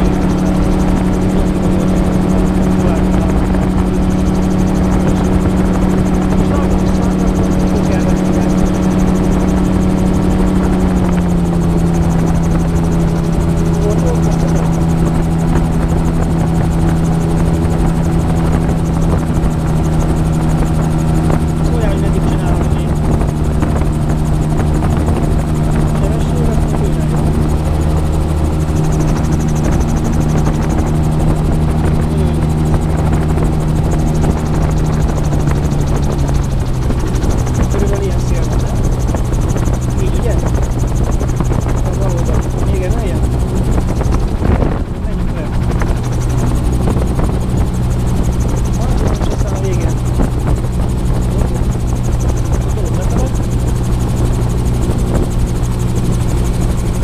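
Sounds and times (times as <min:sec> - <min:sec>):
gyroplane engine and propeller droning: 0:00.0 - 0:57.0
wind rushing: 0:00.0 - 0:57.0.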